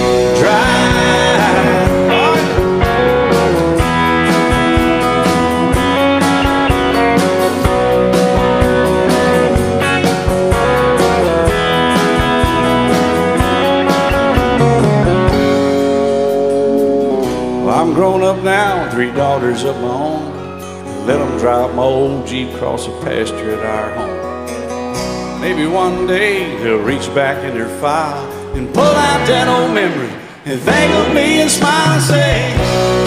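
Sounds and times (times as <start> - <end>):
country band instrumental: 0.0 - 33.0.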